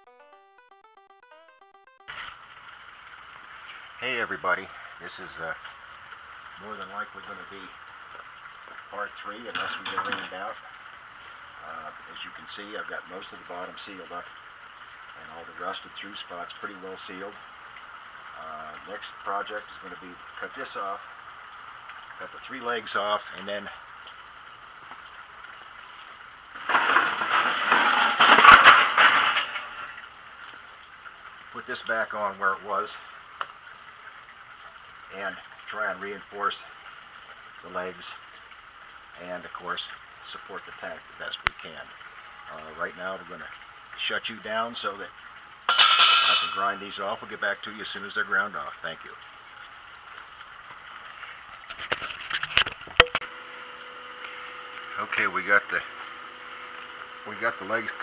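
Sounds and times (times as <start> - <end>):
faint background hiss: 2.1 - 53.0
faint steady hum: 2.1 - 58.0.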